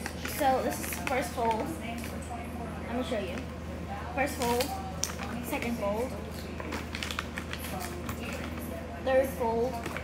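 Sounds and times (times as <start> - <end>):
paper rustling and crackling: 6.3 - 8.7.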